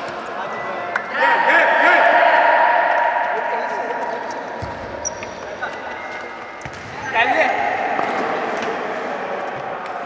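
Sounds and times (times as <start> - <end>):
spectators shouting: 1.1 - 4.3.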